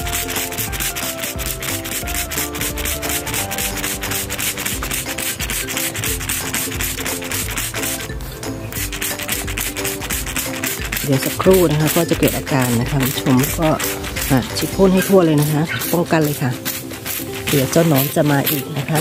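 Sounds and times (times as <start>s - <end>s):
faint background music: 0.0s - 19.0s
spray bottle hissing sprays: 0.0s - 19.0s.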